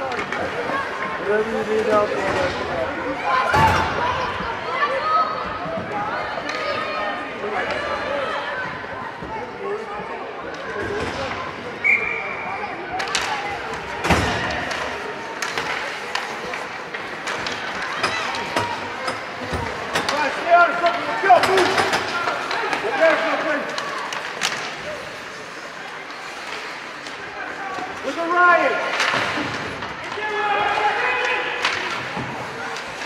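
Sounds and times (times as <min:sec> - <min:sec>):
hockey sticks and puck clacking: 0:00.0 - 0:04.6, 0:05.2 - 0:11.6, 0:12.7 - 0:33.0
spectators talking and calling out: 0:00.0 - 0:33.0.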